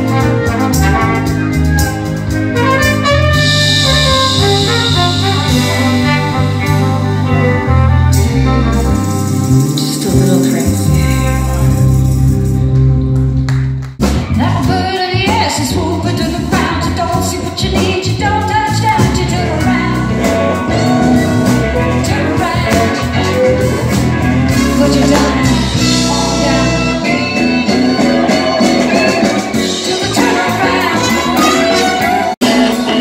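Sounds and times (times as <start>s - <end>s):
live band with singing: 0.0s - 33.0s.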